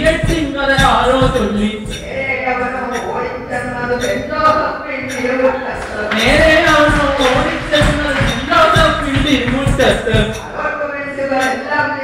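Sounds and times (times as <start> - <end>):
person chanting verse: 0.0 - 10.6.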